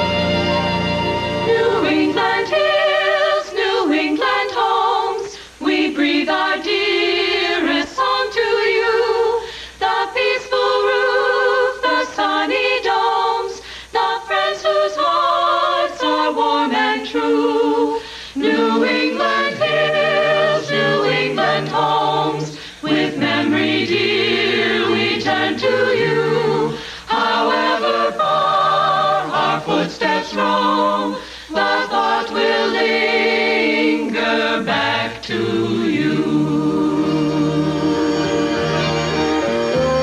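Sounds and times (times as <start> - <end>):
group singing a cappella carol: 0.9 - 40.0.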